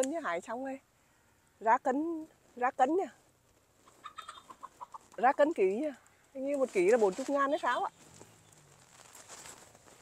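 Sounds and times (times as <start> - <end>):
bird short calls: 3.8 - 5.1.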